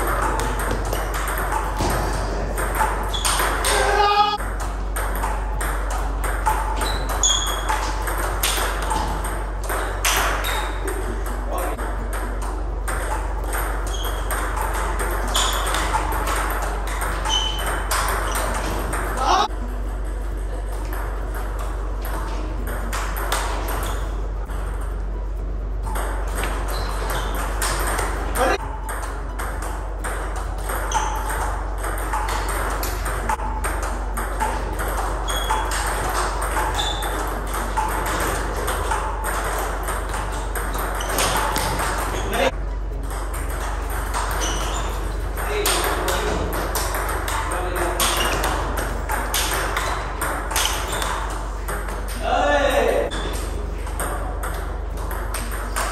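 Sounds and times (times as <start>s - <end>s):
table tennis balls clicking: 0.0s - 55.9s.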